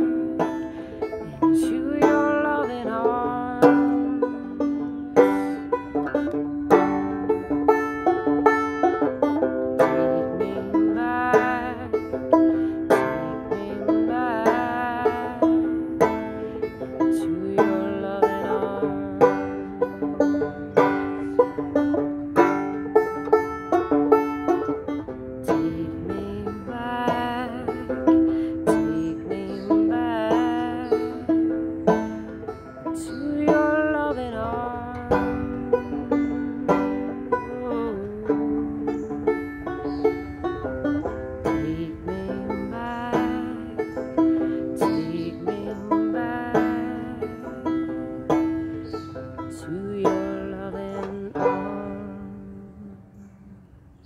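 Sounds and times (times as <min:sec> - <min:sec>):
banjo playing solo: 0:00.0 - 0:53.3.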